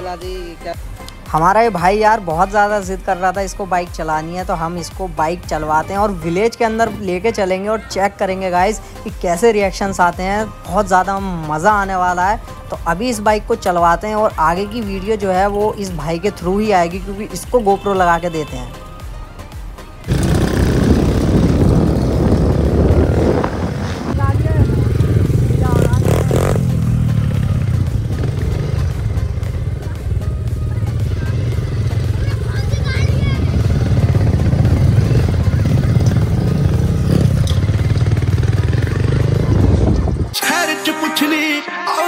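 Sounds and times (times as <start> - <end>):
dirt bike engine running: 20.0 - 40.4.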